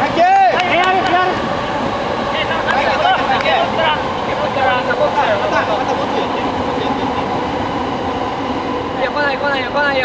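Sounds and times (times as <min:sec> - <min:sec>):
electric train running past: 0:00.0 - 0:10.0
people's voices: 0:00.0 - 0:10.0.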